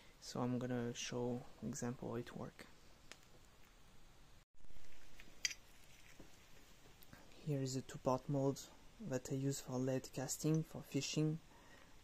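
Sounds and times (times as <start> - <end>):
gloved hands handling parts: 4.8 - 7.1.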